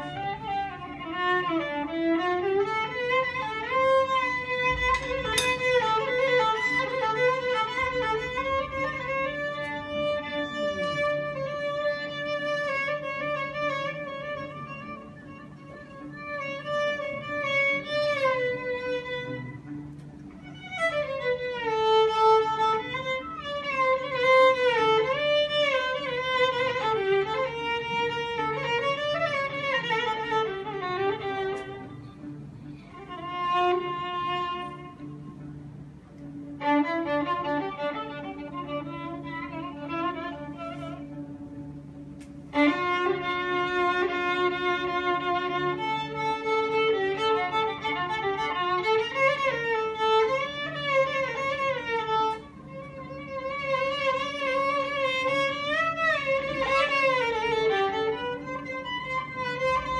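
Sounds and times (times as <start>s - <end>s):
solo violin improvising: 0.0s - 59.9s.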